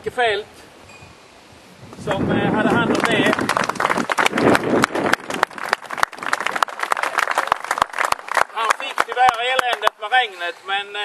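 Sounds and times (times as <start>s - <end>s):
small crowd clapping: 2.7s - 10.0s.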